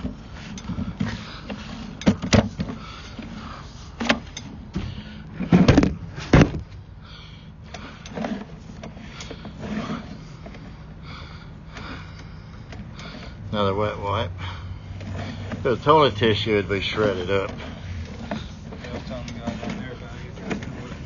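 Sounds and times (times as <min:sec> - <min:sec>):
cable knocks and scrapes: 0:00.0 - 0:06.7, 0:07.7 - 0:10.8, 0:14.9 - 0:21.0
low mechanical hum: 0:00.0 - 0:21.0.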